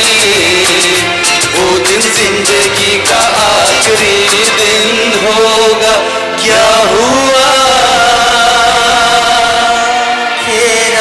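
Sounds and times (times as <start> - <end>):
man singing a long note: 0.0 - 11.0
musical accompaniment: 0.0 - 11.0.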